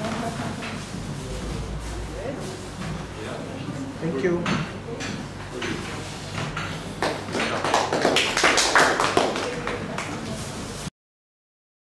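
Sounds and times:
people clapping: 7.0 - 10.3.

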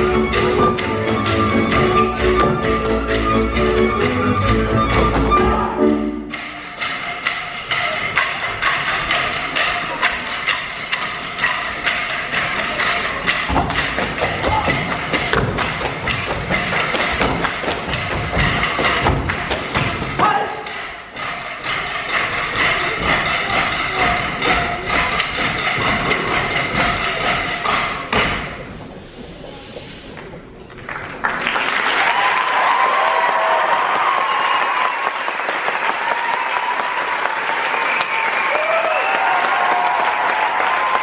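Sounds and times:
folk fiddle music: 0.0 - 6.3
boots stamping on wooden stage: 13.3 - 20.6.

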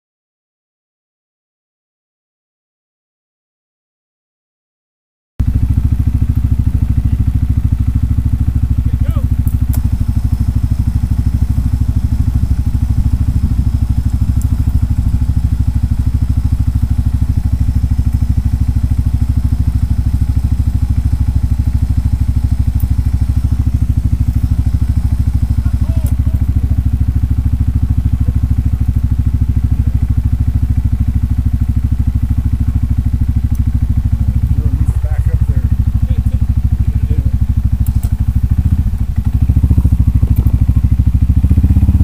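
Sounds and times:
engine idling: 5.4 - 42.0
sharp clicks: 9.4 - 10.0, 26.0 - 26.2, 37.8 - 38.2.

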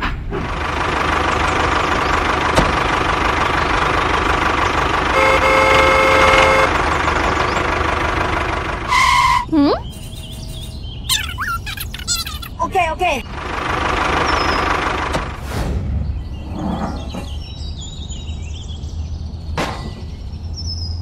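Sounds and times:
engine running: 0.0 - 11.0, 12.3 - 16.5
horn: 5.1 - 6.7.

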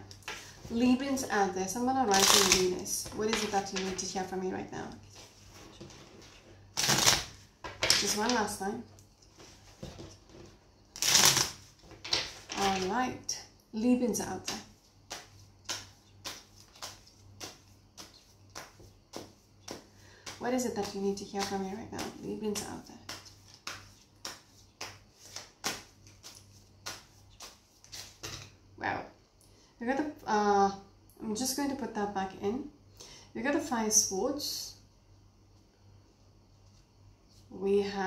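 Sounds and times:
cards being shuffled: 2.1 - 4.1, 5.1 - 8.5, 10.0 - 13.0, 14.5 - 22.2, 23.1 - 28.5.

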